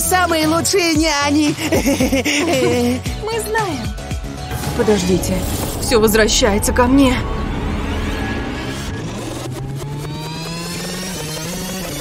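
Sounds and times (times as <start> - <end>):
rising whines: 4.4 - 12.0.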